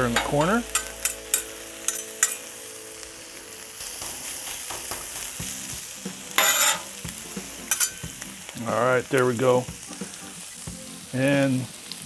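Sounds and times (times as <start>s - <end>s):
meat sizzling on griddle: 0.0s - 12.0s
utensil scraping griddle: 6.4s - 6.9s, 7.6s - 8.1s
metal utensil clicking on plate: 7.7s - 8.0s.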